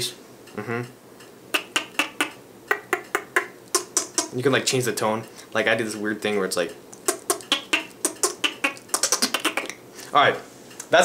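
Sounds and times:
beatboxed high squeaks: 1.5s - 4.4s, 7.0s - 9.8s.

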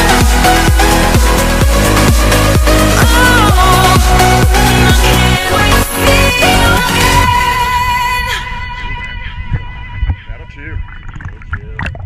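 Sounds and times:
sea water sloshing and splashing: 10.8s - 12.0s.

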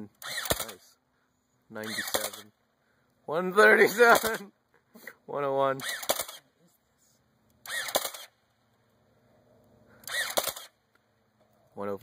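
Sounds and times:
blaster motor whir: 0.1s - 0.8s, 1.8s - 2.4s, 5.8s - 6.5s, 7.6s - 8.4s, 10.0s - 10.8s.

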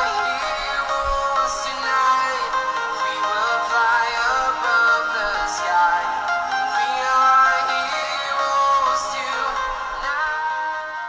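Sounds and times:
music through small speakers: 0.0s - 11.0s.

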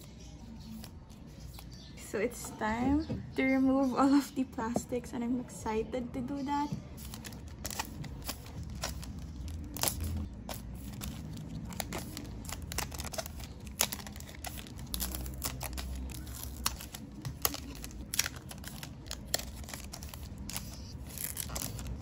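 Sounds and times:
plastic sleeves crinkling: 7.0s - 22.0s.

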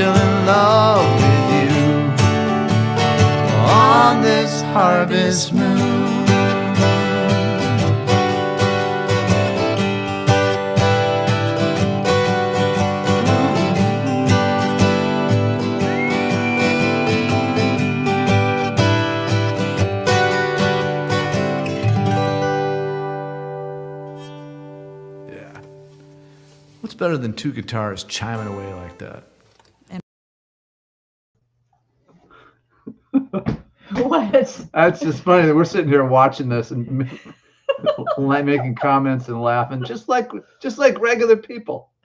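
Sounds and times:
acoustic guitars chiming: 0.0s - 23.3s
whistled note: 13.1s - 19.4s.

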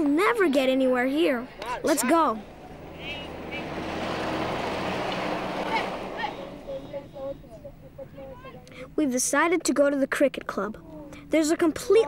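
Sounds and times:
vehicle engine passing: 2.3s - 7.5s.

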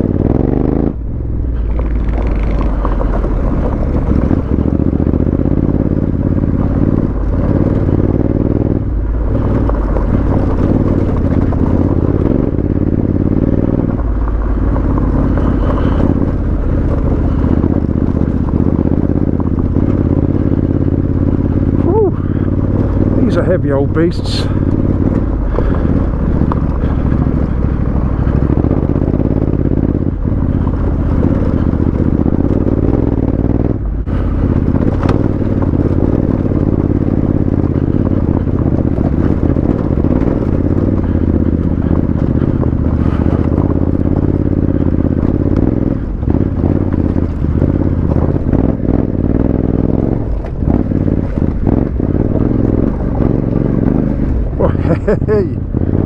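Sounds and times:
motorcycle engine running: 0.0s - 56.0s
stones knocking under tyres: 1.6s - 20.3s, 34.5s - 49.0s.

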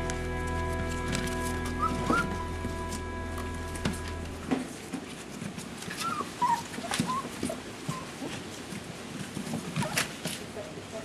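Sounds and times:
puppies whimpering: 1.1s - 4.4s, 5.9s - 8.4s.

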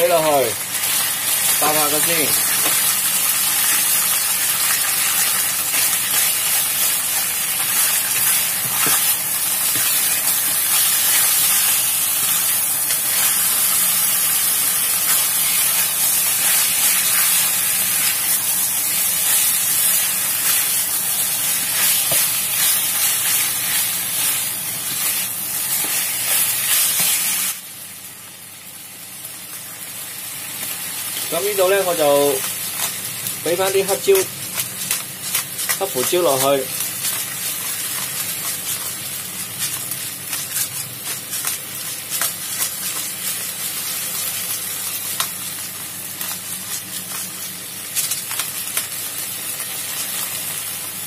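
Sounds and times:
meat sizzling in a wok: 0.0s - 51.0s
spatula stir-frying: 0.0s - 51.0s.

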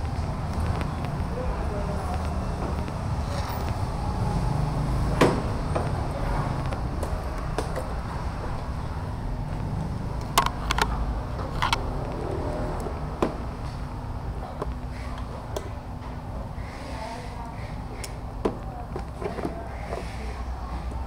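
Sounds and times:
motor vehicle rumble: 0.0s - 21.0s.

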